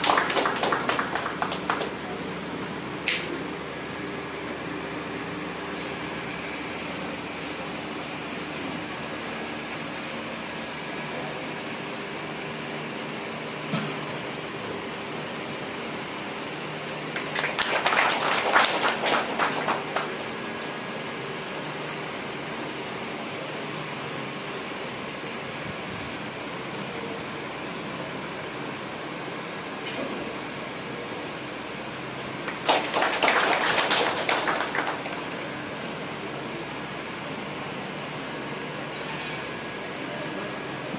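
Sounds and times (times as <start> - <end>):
small audience clapping: 0.0 - 2.2, 17.1 - 20.4, 32.2 - 35.6
steady room hum: 0.0 - 40.9.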